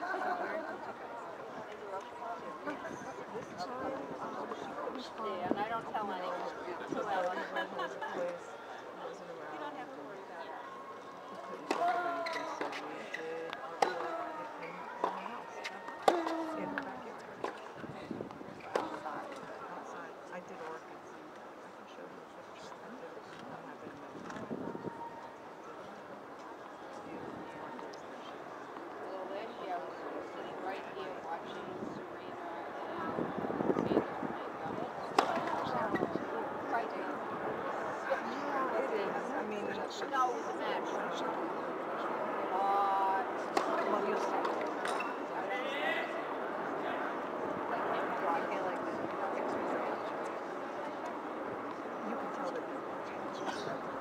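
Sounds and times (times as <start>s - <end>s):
voices chattering: 0.0s - 54.0s.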